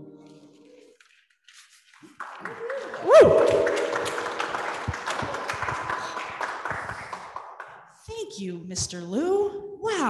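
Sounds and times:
congregation applauding: 2.0s - 7.8s.

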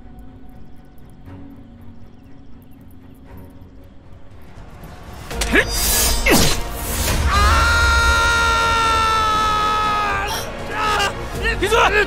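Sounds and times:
man screaming in pain: 7.3s - 11.2s.

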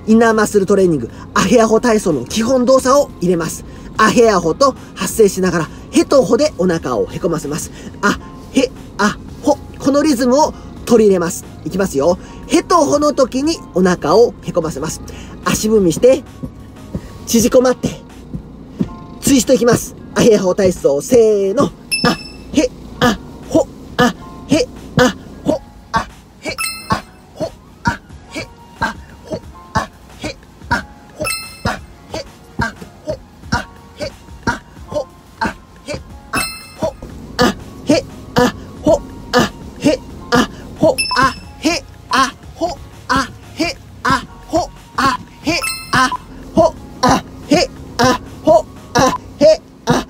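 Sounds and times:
man chanting exercise syllables: 0.0s - 18.1s, 18.8s - 50.0s
background music: 0.0s - 50.0s
forced breaths out: 7.6s - 9.4s, 15.0s - 15.4s.

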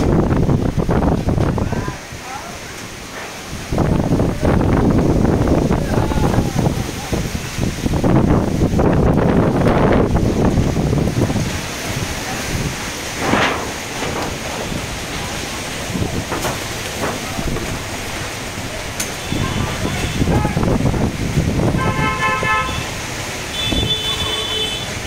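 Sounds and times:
gusty wind buffeting microphone: 0.0s - 24.1s.

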